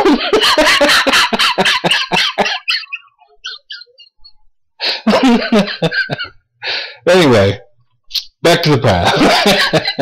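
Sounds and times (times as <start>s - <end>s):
man laughing: 0.0s - 6.4s, 8.9s - 10.0s.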